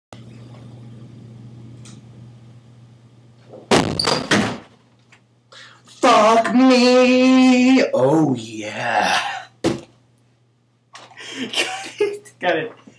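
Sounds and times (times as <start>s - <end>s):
low steady hum: 0.2s - 12.9s
wooden door banging open: 3.7s - 4.7s.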